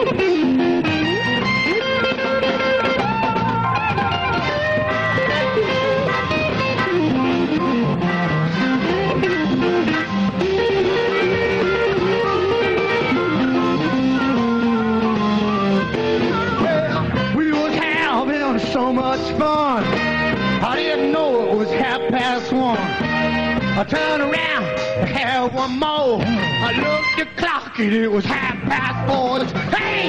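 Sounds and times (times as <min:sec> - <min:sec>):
electric guitar solo: 0:00.0 - 0:27.4
blues band playing: 0:00.0 - 0:30.0.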